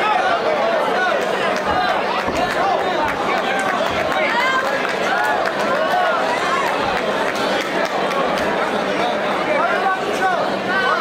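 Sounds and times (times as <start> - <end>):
crowd shouting encouragement: 0.0 - 11.0.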